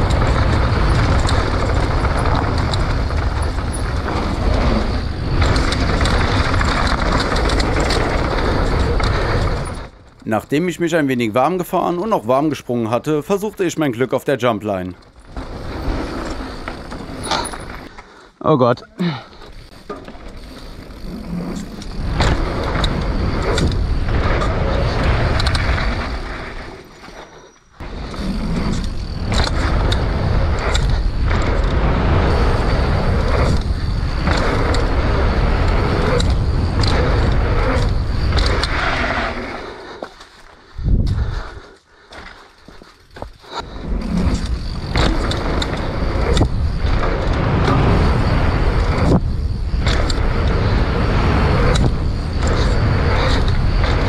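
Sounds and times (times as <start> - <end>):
bike rattling and clicking: 0.0 - 18.4, 19.0 - 54.0
wind and tyre noise: 0.0 - 54.0.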